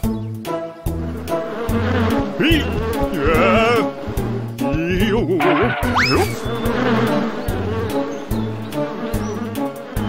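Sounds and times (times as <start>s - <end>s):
background music: 0.0s - 10.0s
cartoon bees buzzing: 0.9s - 10.0s
rising pitch glide: 5.4s - 6.6s.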